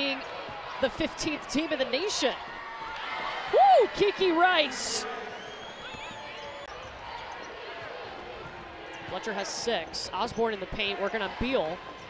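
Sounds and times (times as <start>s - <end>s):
sneaker squeaks: 5.3s - 9.4s.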